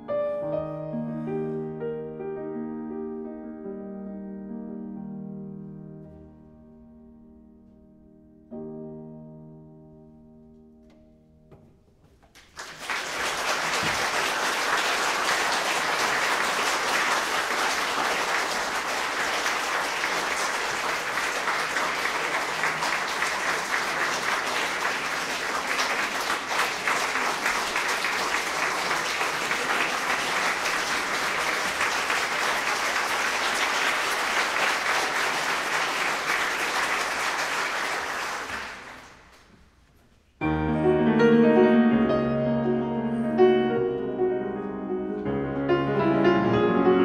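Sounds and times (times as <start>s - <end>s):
audience applauding: 12.3s - 39.5s.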